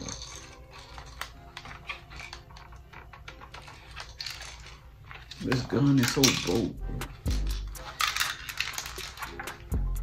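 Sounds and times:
plastic toy gun clicking and rattling: 0.0 - 9.7.

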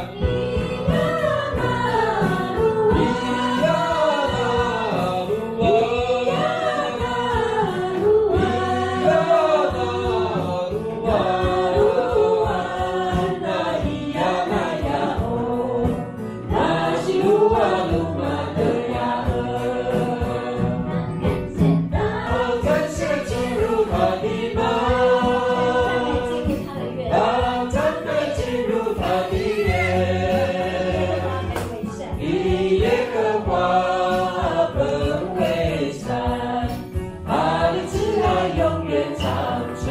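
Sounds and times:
bass guitar: 0.0 - 39.9
choir singing: 0.0 - 39.9
strummed acoustic guitar: 0.0 - 39.9
woman singing into microphone: 0.0 - 39.9.

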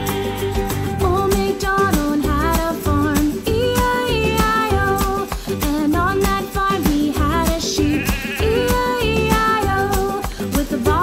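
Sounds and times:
upbeat children's song: 0.0 - 11.0.

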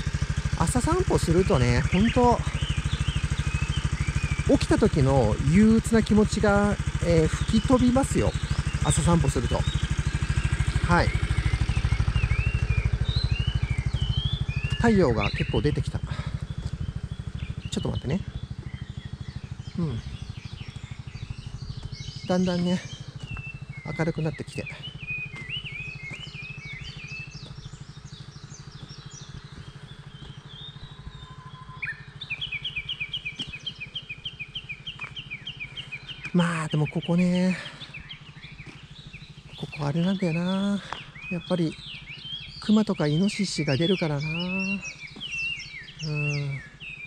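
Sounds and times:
bird chirps: 0.0 - 47.0
scooter engine idling: 0.0 - 47.0
steady low hum: 0.0 - 47.0
bird two-note call: 30.7 - 34.0.

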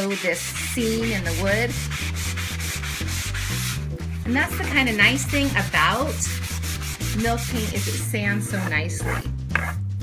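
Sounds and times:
sanding block rubbing on wood: 0.0 - 9.8.

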